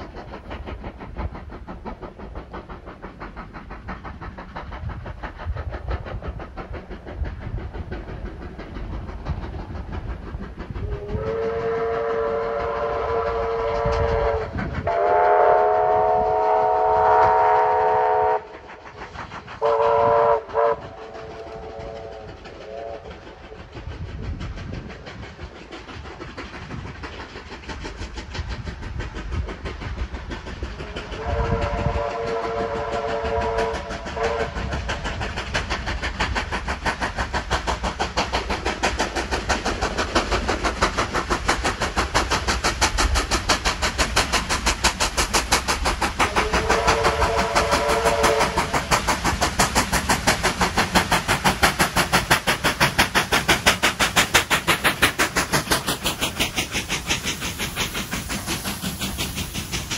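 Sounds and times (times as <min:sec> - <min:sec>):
steam locomotive exhaust beat: 0:00.0 - 0:59.9
steam locomotive whistle: 0:10.8 - 0:18.7, 0:19.6 - 0:23.3, 0:30.9 - 0:34.8, 0:46.3 - 0:48.8.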